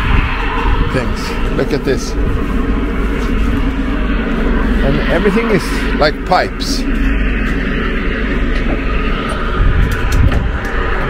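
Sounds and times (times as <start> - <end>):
low rumbling noise: 0.0 - 11.0.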